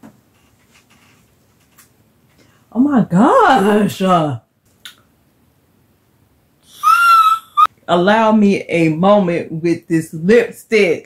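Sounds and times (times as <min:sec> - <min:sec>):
woman squealing with delight: 0:06.7 - 0:07.7.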